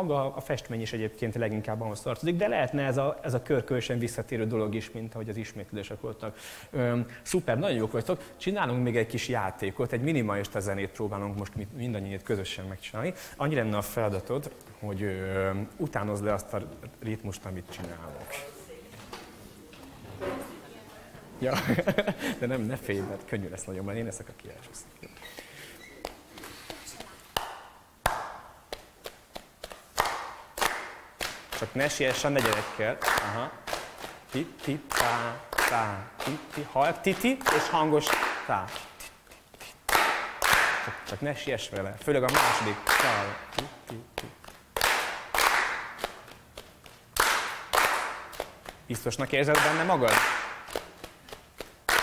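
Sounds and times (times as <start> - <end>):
hands clapping and patting: 26.0 - 41.1, 41.7 - 52.0.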